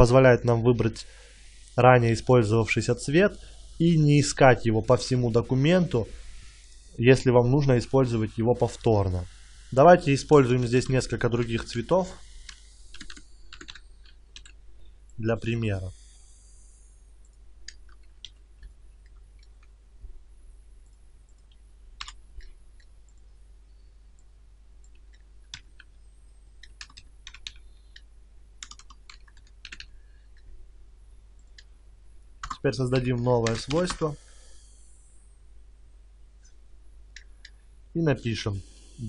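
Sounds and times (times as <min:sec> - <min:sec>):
computer keyboard keystrokes: 0:12.9 - 0:14.6, 0:26.6 - 0:28.0, 0:28.6 - 0:29.9, 0:32.4 - 0:34.0.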